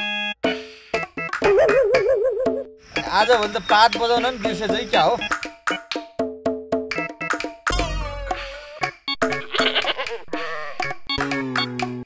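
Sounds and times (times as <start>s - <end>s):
background music: 0.0s - 12.0s
goat bleating: 9.3s - 10.9s.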